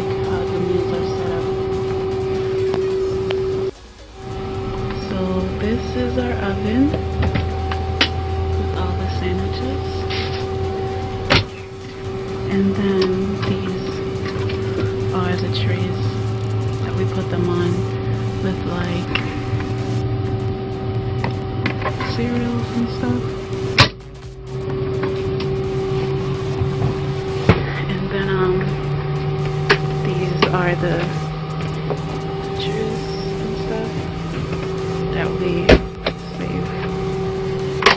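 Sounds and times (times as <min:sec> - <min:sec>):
airliner cabin hum: 0:00.0 - 0:37.9
steady tone: 0:00.0 - 0:37.9.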